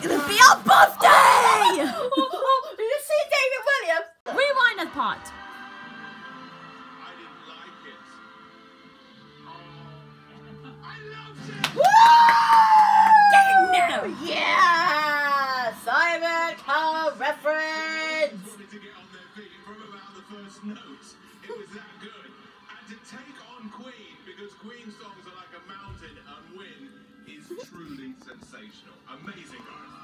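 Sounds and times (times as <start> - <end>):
background music: 0.0 - 30.0
voices on television: 0.0 - 30.0
person squealing: 1.0 - 2.0.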